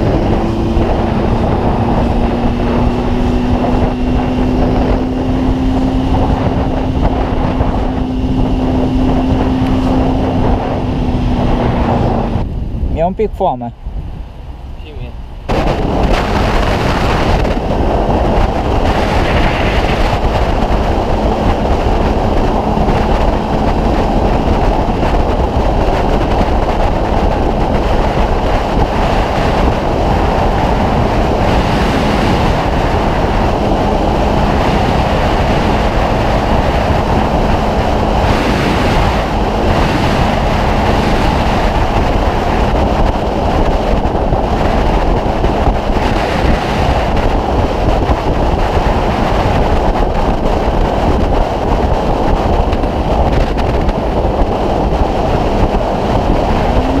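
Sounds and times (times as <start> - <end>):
motorcycle engine and tyre drone: 0.0 - 57.0
wind noise on microphone: 0.0 - 57.0.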